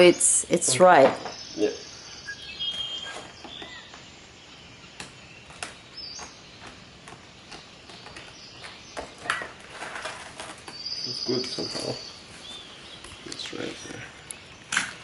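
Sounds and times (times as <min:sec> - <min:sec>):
faint high chirps: 0:00.0 - 0:06.4, 0:10.7 - 0:14.5.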